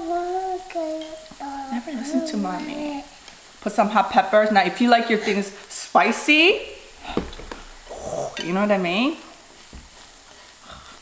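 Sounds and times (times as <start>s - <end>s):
food sizzling in a pan: 0.0s - 10.8s.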